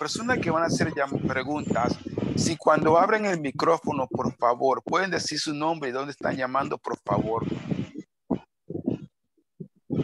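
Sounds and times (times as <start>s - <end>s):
person's voice over video call: 0.0s - 8.0s.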